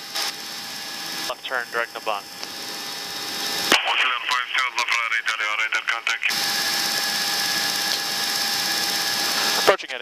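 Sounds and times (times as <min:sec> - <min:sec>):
aircraft cockpit engine rush: 0:00.0 - 0:10.0
radio voice: 0:01.3 - 0:02.2, 0:03.7 - 0:06.4, 0:09.6 - 0:10.0.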